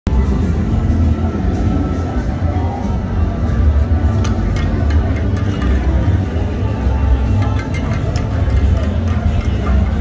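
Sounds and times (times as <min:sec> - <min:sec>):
bass-heavy music on sound system: 0:00.1 - 0:10.0.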